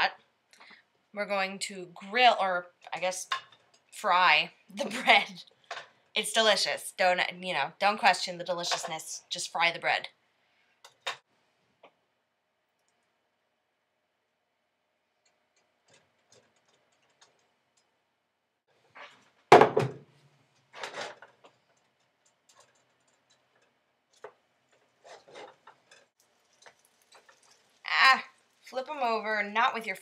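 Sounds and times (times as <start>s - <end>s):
utensils clicking and tapping: 21.3s - 27.7s.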